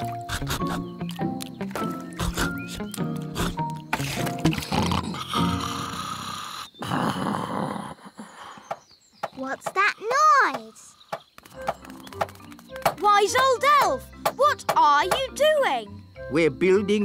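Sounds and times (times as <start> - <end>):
cartoon snoring: 3.3 - 8.5
cartoon music with plucked notes: 11.6 - 17.0.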